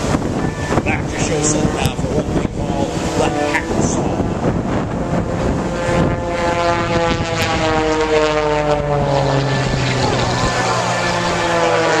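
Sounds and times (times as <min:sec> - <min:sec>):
propeller planes droning overhead: 0:00.0 - 0:12.0.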